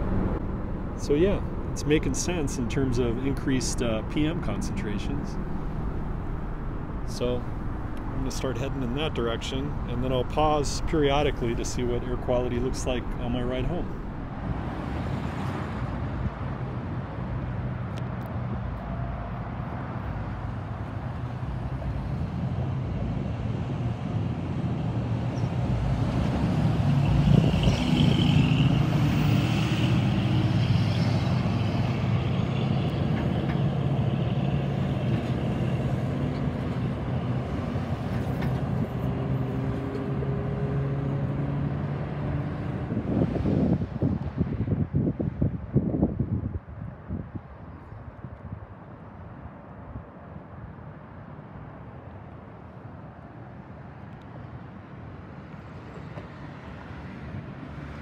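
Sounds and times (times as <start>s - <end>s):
cars and trucks passing: 0.0s - 58.0s.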